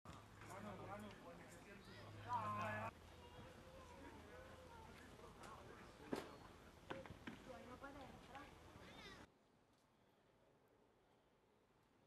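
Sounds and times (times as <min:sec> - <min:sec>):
distant voices talking: 0:00.2 - 0:09.3.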